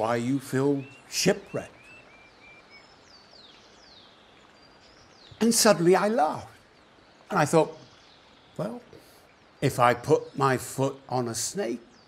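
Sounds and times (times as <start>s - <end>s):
soft steady hiss: 0.0s - 12.0s.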